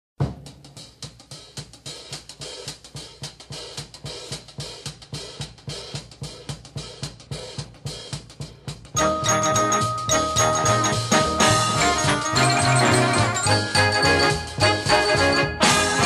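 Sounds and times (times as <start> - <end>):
jazz drum kit playing: 0.2 - 16.0.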